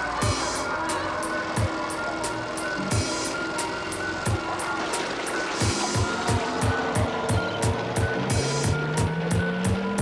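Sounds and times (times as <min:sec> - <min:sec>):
dance music mix: 0:00.0 - 0:10.0.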